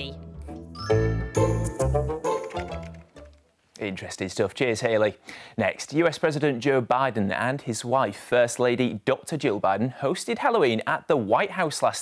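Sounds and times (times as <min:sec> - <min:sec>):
children's tv music jingle: 0:00.0 - 0:03.3.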